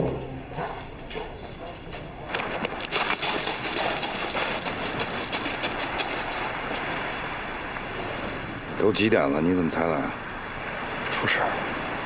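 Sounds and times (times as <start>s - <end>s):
footsteps on loose stones: 2.2s - 7.1s
surf washing over pebbles: 2.3s - 12.0s.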